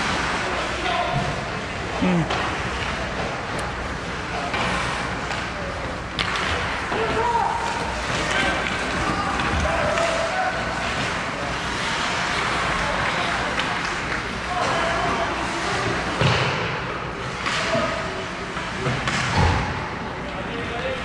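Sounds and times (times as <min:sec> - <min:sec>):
indistinct shouting and chatter: 0:00.0 - 0:21.0.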